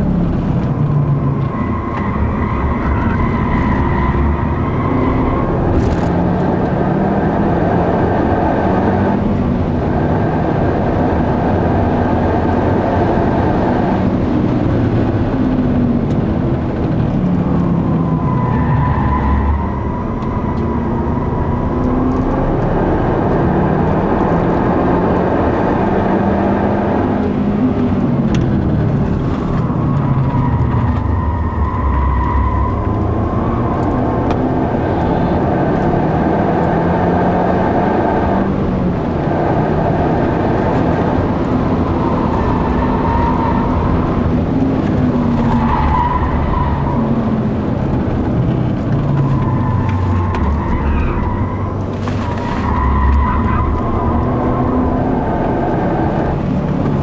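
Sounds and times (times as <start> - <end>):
car engine revving: 0.0 - 57.0
tyre squeal: 49.0 - 54.8.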